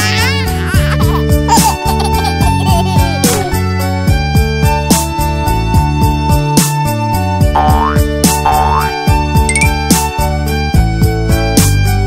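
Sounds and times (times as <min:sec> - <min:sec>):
cartoon baby giggling: 0:00.0 - 0:03.6
cheerful children's music: 0:00.0 - 0:12.0.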